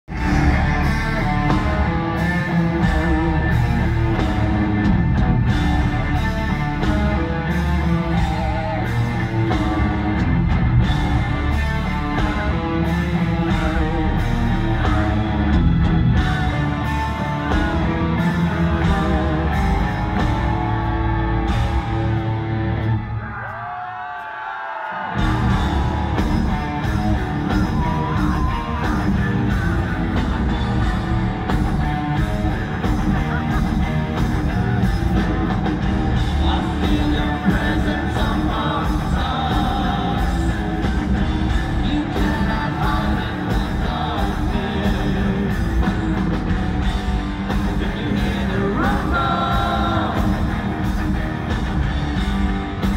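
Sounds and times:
heavy rock band playing: 0:00.0 - 0:23.8, 0:25.0 - 0:52.9.

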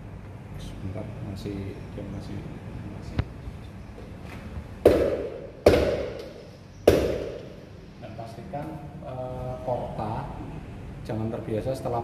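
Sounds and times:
portafilter knocking against knock box: 0:04.8 - 0:07.5.

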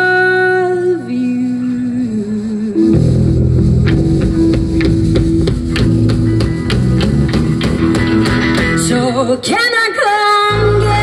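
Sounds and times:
sustained guitar: 0:00.0 - 0:11.0
low bass notes: 0:01.9 - 0:09.3, 0:10.5 - 0:11.0
drum kit beat: 0:02.9 - 0:09.2.

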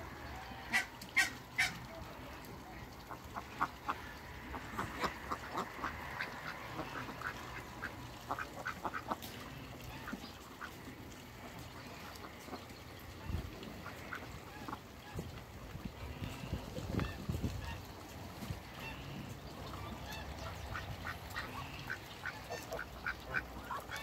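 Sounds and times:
ducks quacking: 0:00.1 - 0:24.0.

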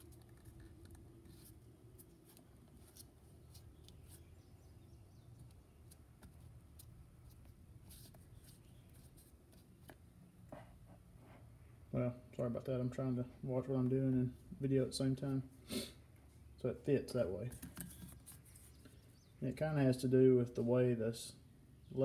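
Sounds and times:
faint handling noise: 0:17.2 - 0:19.2.

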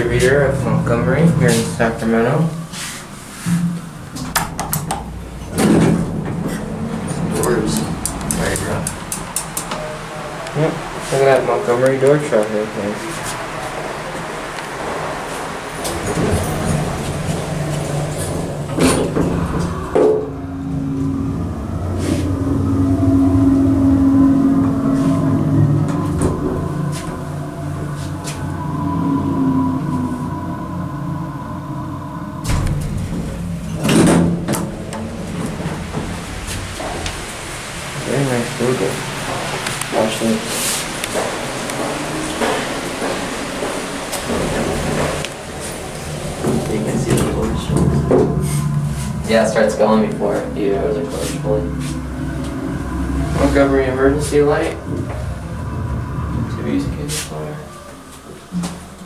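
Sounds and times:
elevator doors sliding rumble: 0:00.0 - 0:59.0
loud door clunk: 0:03.6 - 0:09.9, 0:32.4 - 0:37.4.

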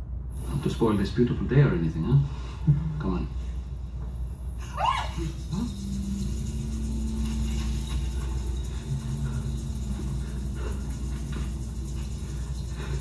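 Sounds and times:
low steady rumble: 0:00.0 - 0:13.0
faint scattered sounds: 0:00.4 - 0:13.0
held low tone: 0:04.0 - 0:13.0.

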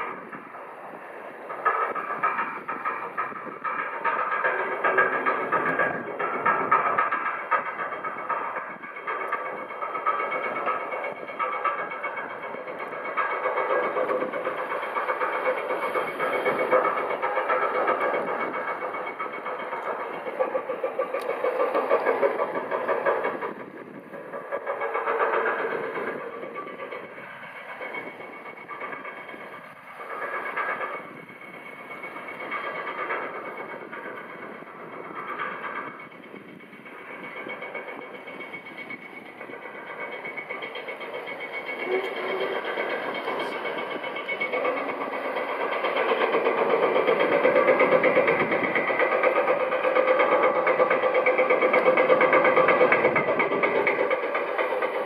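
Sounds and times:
ferry engines droning and whining: 0:00.0 - 0:55.0.

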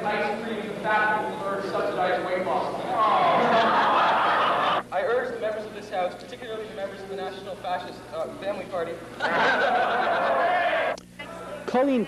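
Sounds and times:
crowd laughing: 0:03.0 - 0:04.8, 0:09.2 - 0:11.0.

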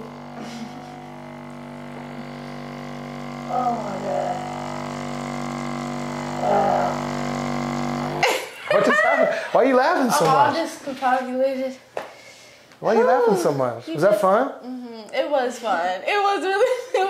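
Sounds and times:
massage gun motor buzz: 0:00.0 - 0:08.4.

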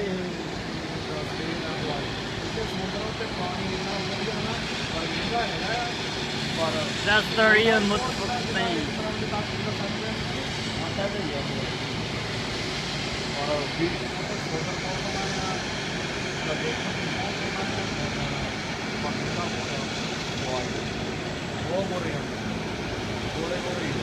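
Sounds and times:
jet airliner taxiing: 0:00.0 - 0:24.0.

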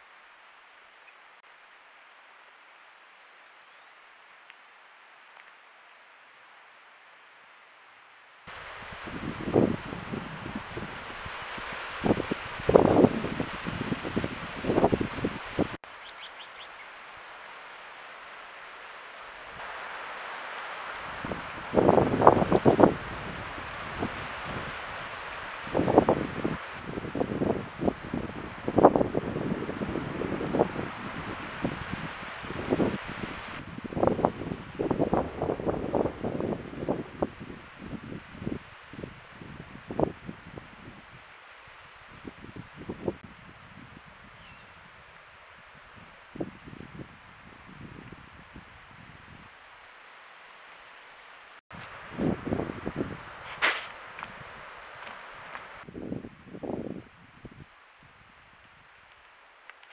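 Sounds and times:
steady hiss: 0:00.0 - 0:59.9
rustling in dry grass: 0:08.5 - 0:40.1, 0:51.7 - 0:56.8.

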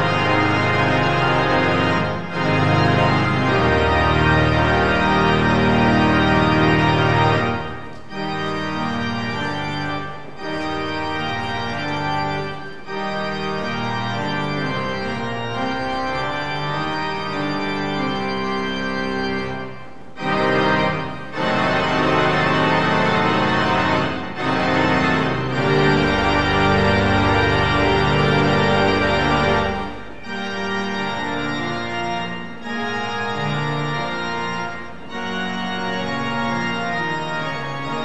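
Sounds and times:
pipe organ playing chords: 0:00.0 - 0:38.0.

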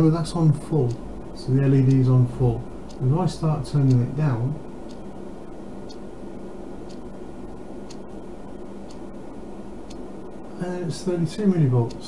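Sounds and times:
clock ticking faintly: 0:00.0 - 0:12.0
steady low hum: 0:00.0 - 0:12.0.

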